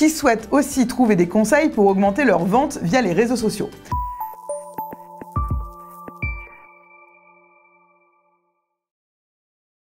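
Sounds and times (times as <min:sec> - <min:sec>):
bell-like chord: 0:03.9 - 0:08.6.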